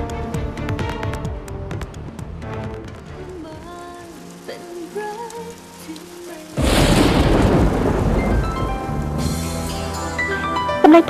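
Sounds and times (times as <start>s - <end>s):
soft background music: 0.0s - 11.0s
rain rushing: 0.4s - 11.0s
thunderclap: 6.6s - 9.4s.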